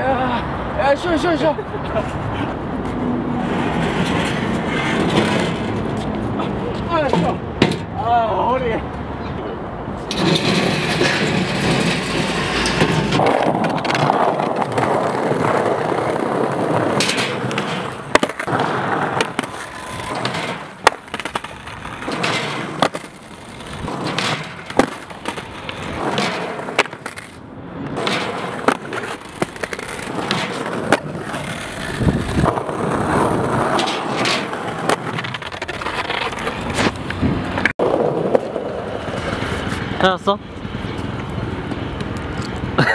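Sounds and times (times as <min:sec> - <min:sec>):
skateboard wheels rolling on stone: 0:02.8 - 0:07.9, 0:10.0 - 0:40.1
skateboard deck clacks: 0:10.1 - 0:39.6.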